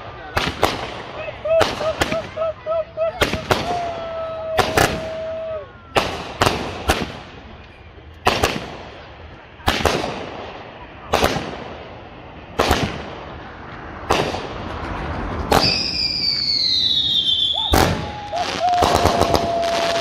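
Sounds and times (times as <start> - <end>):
whistle-like firework tone: 15.4 - 20.0.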